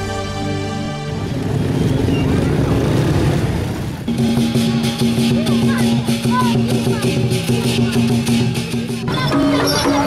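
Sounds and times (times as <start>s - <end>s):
motorcycle engines running: 1.0s - 10.0s.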